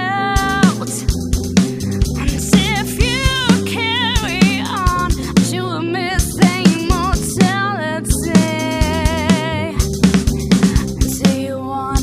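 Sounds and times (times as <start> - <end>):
guitar: 0.0 - 12.0
drum kit beat: 0.4 - 12.0.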